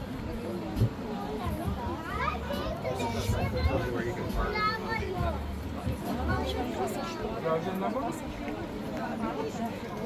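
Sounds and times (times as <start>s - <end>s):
people talking at once: 0.0s - 10.0s
children's voices: 1.2s - 5.4s.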